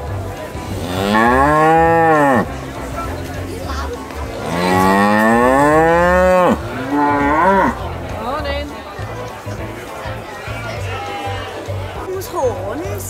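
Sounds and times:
cattle mooing: 0:00.7 - 0:02.5, 0:04.3 - 0:07.8.

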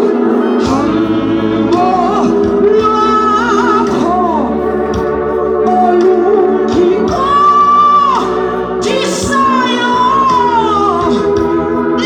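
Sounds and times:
keyboard chords: 0:00.0 - 0:12.0
woman singing: 0:00.6 - 0:04.6, 0:05.6 - 0:12.0.

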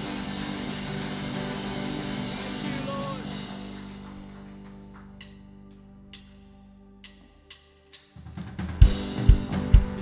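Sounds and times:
band holding a chord: 0:00.0 - 0:04.4
crowd clapping: 0:01.3 - 0:05.8.

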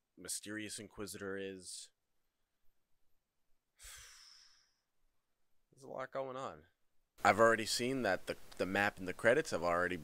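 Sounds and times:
man breathing into microphone: 0:03.8 - 0:04.9.

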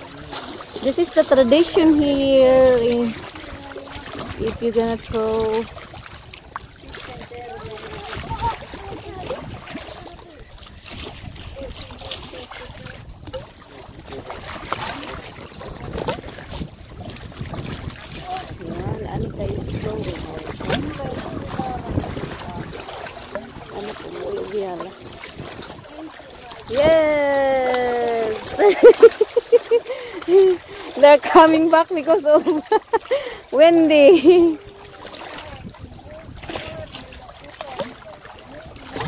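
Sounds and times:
waves splashing against rocks: 0:00.0 - 0:39.0
wind buffeting microphone: 0:00.0 - 0:39.0.

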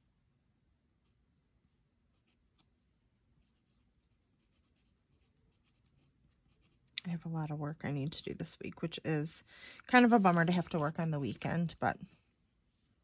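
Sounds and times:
pen scratching on paper: 0:03.4 - 0:06.8.

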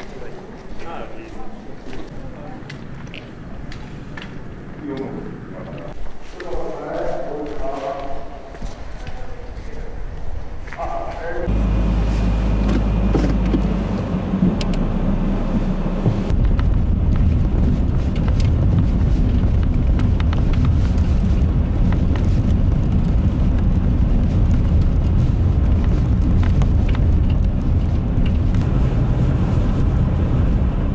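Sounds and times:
car engine and road noise: 0:10.5 - 0:30.9.

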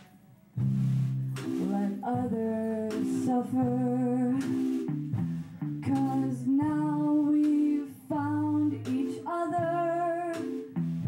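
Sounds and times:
guitar: 0:00.0 - 0:11.0
woman singing: 0:01.6 - 0:04.8, 0:05.8 - 0:10.7.

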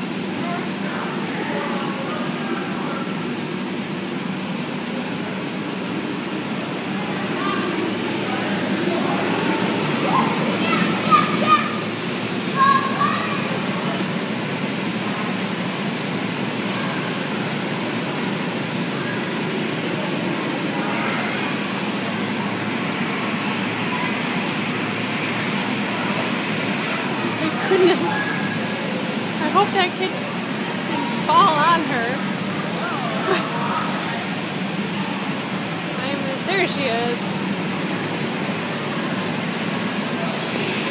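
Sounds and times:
electric blower fan: 0:00.0 - 0:40.9
faint children's voices: 0:05.2 - 0:15.5, 0:18.7 - 0:31.4.

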